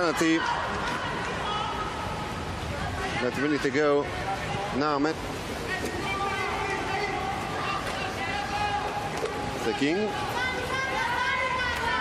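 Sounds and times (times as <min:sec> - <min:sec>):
crowd hubbub of spectators: 0:00.0 - 0:12.0.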